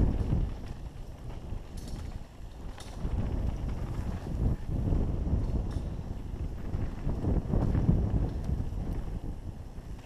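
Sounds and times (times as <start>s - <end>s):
bike knocking over rough ground: 0.0s - 9.2s
wind rushing over microphone: 0.0s - 10.0s.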